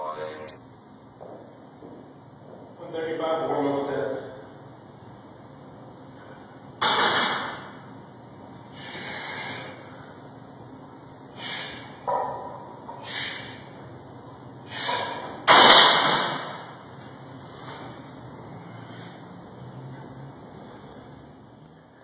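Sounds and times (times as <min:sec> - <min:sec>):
forceful breathy puffs: 0:13.0 - 0:13.7, 0:14.7 - 0:15.3.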